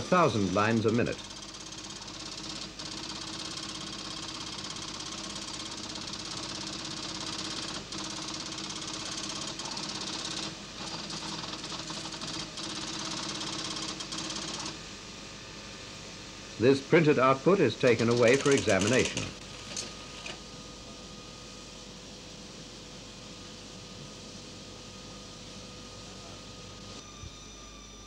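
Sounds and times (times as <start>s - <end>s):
line printer mechanical chatter: 0.0s - 14.8s, 16.9s - 20.4s
printer hum: 0.0s - 28.0s.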